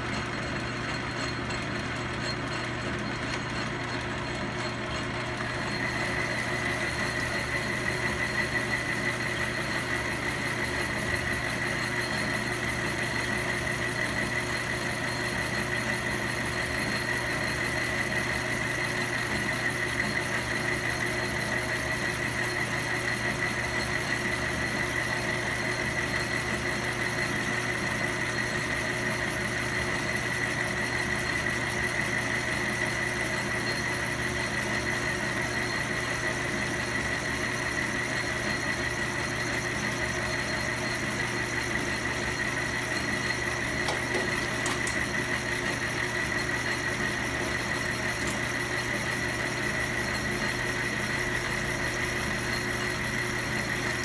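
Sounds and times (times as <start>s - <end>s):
metal lathe running: 0.0s - 54.0s.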